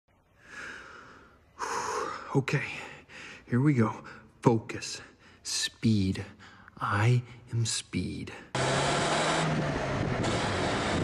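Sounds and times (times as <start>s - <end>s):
man breathing: 0.4s - 4.4s, 5.0s - 5.5s, 6.2s - 7.5s.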